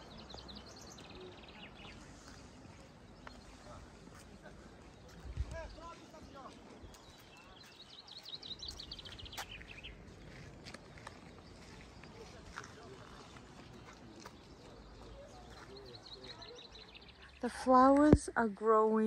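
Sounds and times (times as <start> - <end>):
faint distant voices: 0.0 - 17.7.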